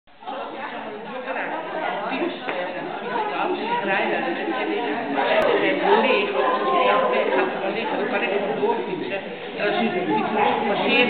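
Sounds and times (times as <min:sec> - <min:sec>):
chatter of several voices: 0:00.2 - 0:11.0.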